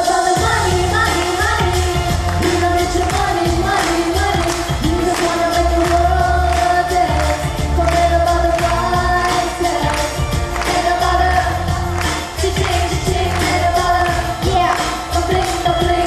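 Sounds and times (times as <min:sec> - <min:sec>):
bass and beat accompaniment: 0:00.0 - 0:16.0
person singing pop song: 0:00.0 - 0:16.0.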